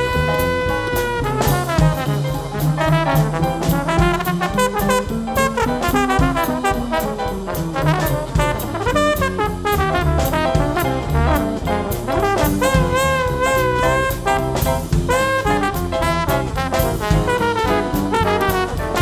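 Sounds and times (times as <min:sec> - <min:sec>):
drums with cymbal strokes: 0:00.0 - 0:19.0
piano: 0:00.0 - 0:19.0
trombones playing jazz duet: 0:00.0 - 0:19.0
upright bass: 0:00.0 - 0:19.0.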